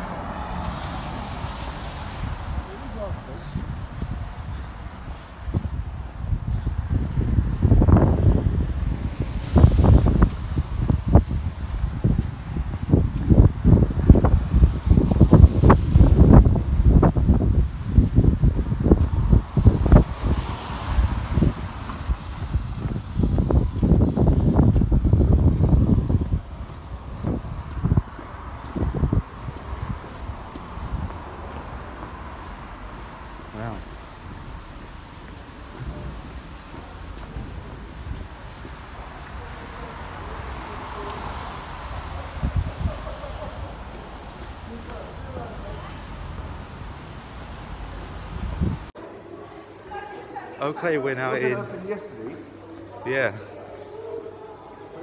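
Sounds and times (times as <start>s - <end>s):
wind buffeting microphone: 0.0s - 49.0s.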